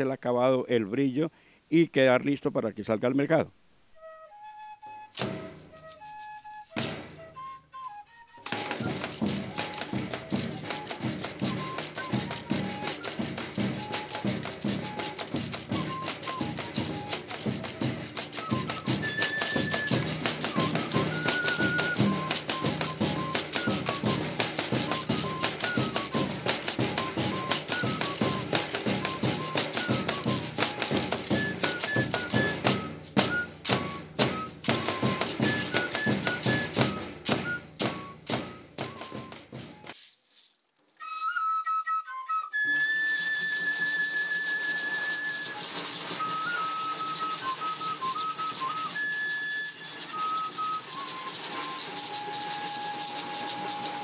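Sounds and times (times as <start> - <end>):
cane flute melody: 3.9 - 40.0, 41.0 - 54.0
maracas rattling: 4.9 - 41.4, 42.3 - 54.0
drum strokes: 5.1 - 7.6, 8.4 - 40.0, 43.0 - 54.0
rhythmic scraping of scrapers: 8.4 - 40.0, 43.0 - 54.0.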